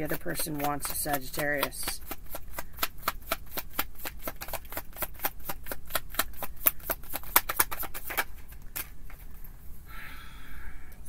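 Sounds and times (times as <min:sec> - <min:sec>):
cards being shuffled: 0:00.0 - 0:09.3.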